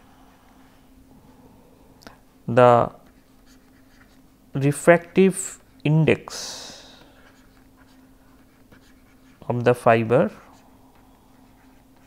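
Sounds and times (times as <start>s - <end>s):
steady low hum: 0.0s - 12.0s
stylus scratching on pen tablet: 3.0s - 5.6s, 7.2s - 9.5s, 10.2s - 12.0s.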